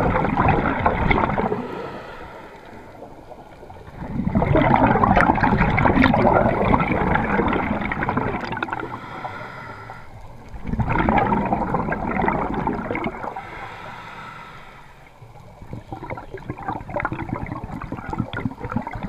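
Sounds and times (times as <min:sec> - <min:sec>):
air bubbling underwater: 0:00.0 - 0:02.3, 0:03.0 - 0:13.6, 0:15.6 - 0:19.0.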